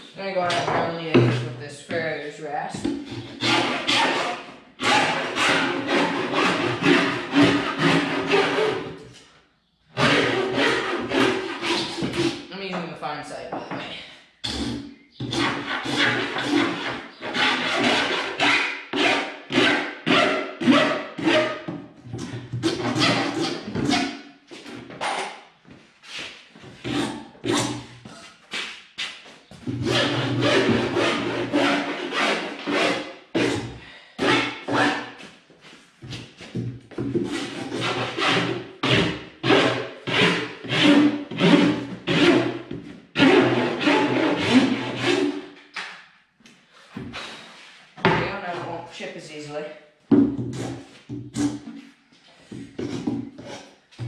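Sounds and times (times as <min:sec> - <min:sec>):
rasp filing wood: 0:02.9 - 0:09.0, 0:10.0 - 0:12.5, 0:14.5 - 0:21.6, 0:22.2 - 0:24.7, 0:29.7 - 0:35.2, 0:37.2 - 0:42.6, 0:43.2 - 0:45.4.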